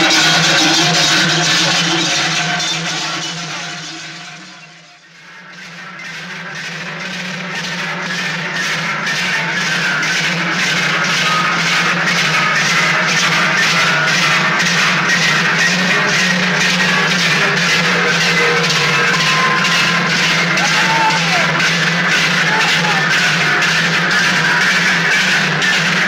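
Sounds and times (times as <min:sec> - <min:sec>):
large cowbells clanging rhythmically: 0:00.0 - 0:26.0.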